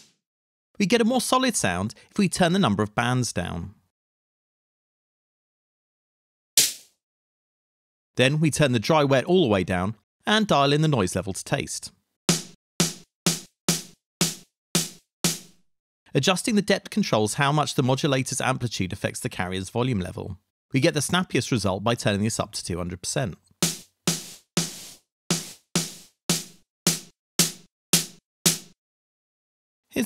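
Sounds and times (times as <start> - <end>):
programmed snare drum hits: 12.3 - 15.6, 23.6 - 28.8.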